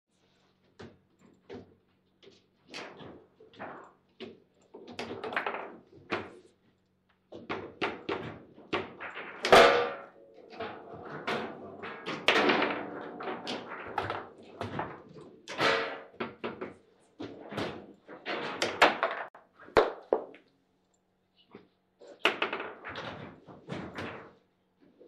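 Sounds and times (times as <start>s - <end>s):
foosball ball knocks and thuds: 7.4s - 20.4s, 22.3s - 24.3s
foosball rods clacking: 8.9s - 16.6s, 18.3s - 20.1s.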